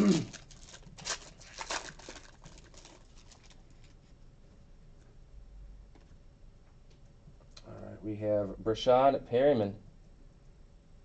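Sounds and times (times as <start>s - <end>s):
throat clearing: 0.0s - 0.4s
foil pack crinkling: 0.0s - 4.1s.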